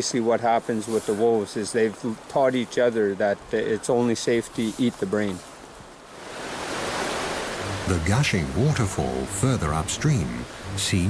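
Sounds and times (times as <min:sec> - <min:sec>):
waterfall roaring: 0:06.2 - 0:11.0.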